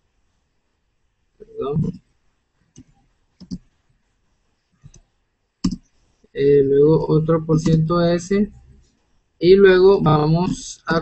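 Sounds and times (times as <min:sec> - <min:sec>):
computer keyboard keystrokes: 0:02.8 - 0:03.6.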